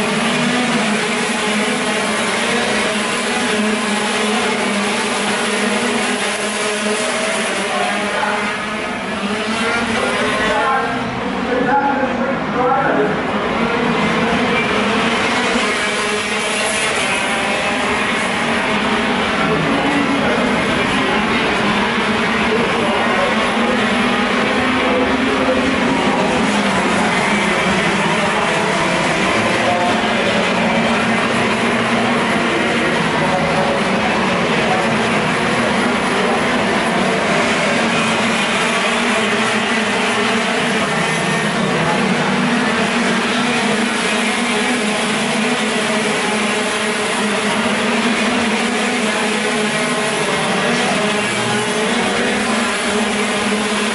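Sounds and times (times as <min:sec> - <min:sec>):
kart engines buzzing: 0:00.0 - 0:53.9.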